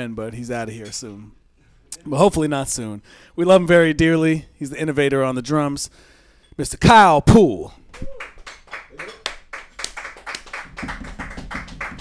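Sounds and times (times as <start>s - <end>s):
people clapping: 7.9s - 12.0s.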